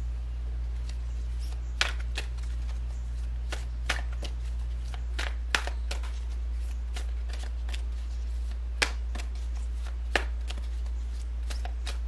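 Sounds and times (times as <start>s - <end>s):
steady low hum: 0.0s - 12.0s
cards being shuffled: 0.7s - 12.0s.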